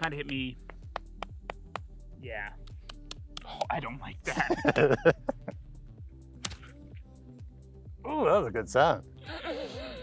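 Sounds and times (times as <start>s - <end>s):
background music: 0.0s - 10.0s
leather slapjack slapping skin: 0.7s - 1.9s, 6.4s - 6.8s.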